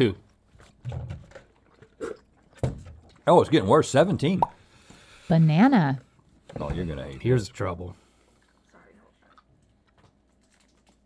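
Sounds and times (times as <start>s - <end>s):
wet mouth sounds: 1.6s - 2.6s
chewing soft candy: 8.2s - 11.0s.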